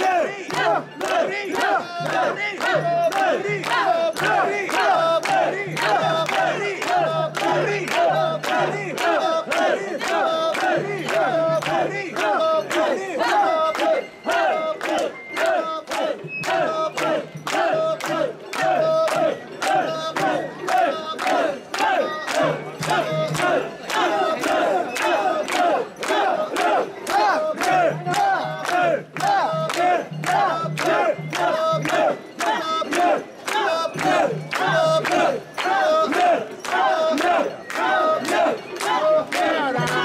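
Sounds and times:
hand clapping: 0.0 - 40.0
people chanting rhythmically: 0.0 - 40.0.

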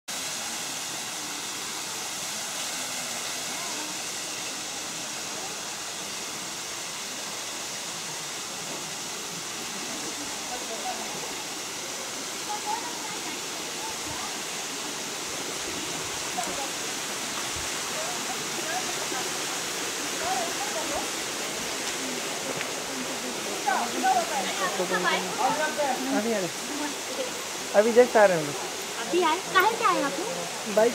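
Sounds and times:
stream water rushing: 0.1 - 30.9.

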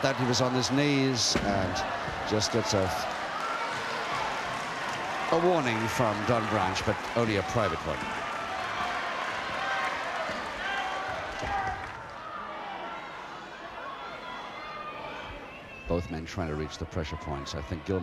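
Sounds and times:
crowd chattering and calling out: 0.0 - 18.0.

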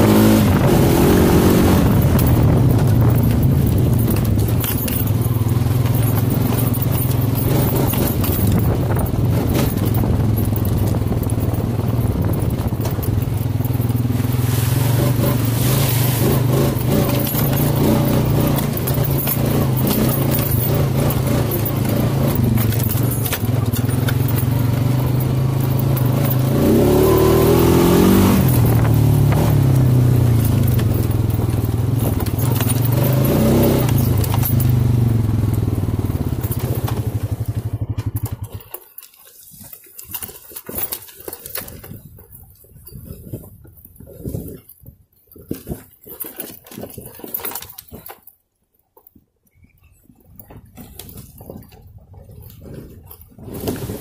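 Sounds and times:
atv engine revving: 0.0 - 38.8, 51.0 - 54.0.

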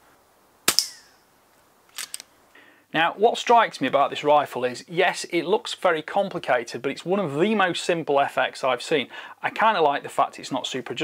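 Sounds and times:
air rifle shot: 0.7 - 1.2
sharp metallic clicks: 1.9 - 2.3.

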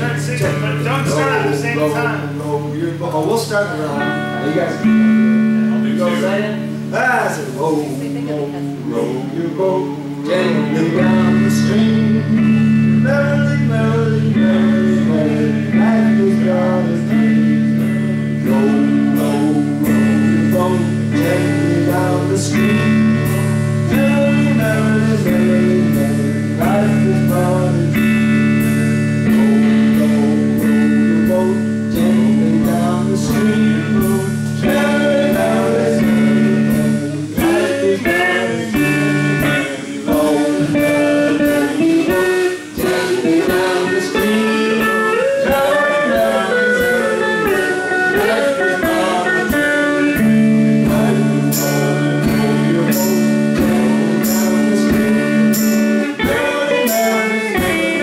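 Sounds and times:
live rock band playing: 0.0 - 58.0
person singing: 8.7 - 58.0.

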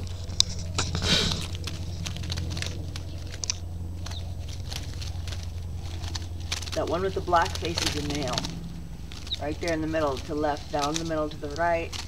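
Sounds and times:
birds rustling in a trap: 0.0 - 12.0
steady low hum: 0.0 - 12.0.

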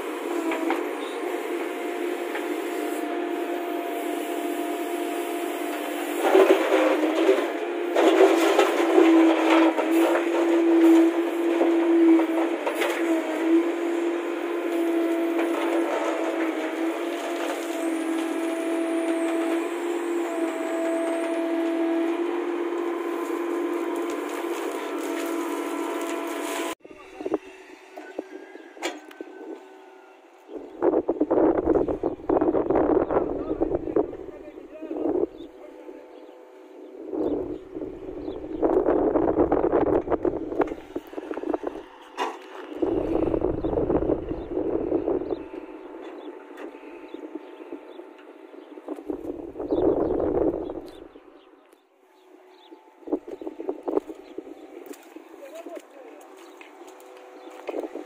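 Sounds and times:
backhoe engine droning: 0.0 - 58.0
bucket scraping earth and stones: 6.0 - 13.7, 22.8 - 26.8
wind rumble on microphone: 30.5 - 35.5, 36.7 - 51.2, 52.3 - 55.9, 56.6 - 58.0.

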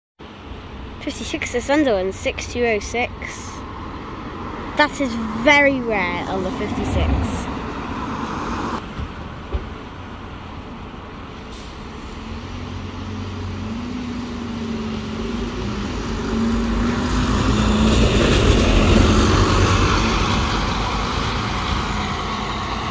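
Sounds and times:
diesel bus engine passing: 0.3 - 22.9.

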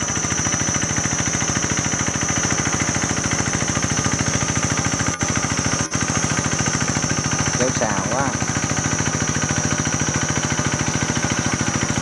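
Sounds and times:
tractor engine chugging: 0.0 - 12.0.

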